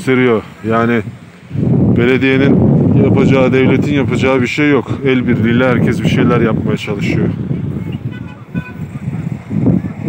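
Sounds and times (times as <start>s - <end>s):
low rumbling noise: 0.0s - 10.0s
vehicle horn toots: 7.5s - 8.9s.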